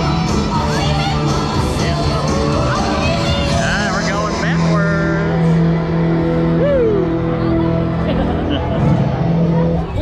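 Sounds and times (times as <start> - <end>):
loud fairground ride music: 0.0 - 10.0.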